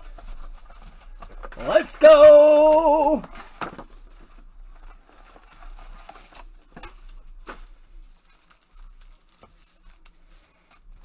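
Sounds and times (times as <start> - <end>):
foil packs crinkling: 0.0 - 11.0.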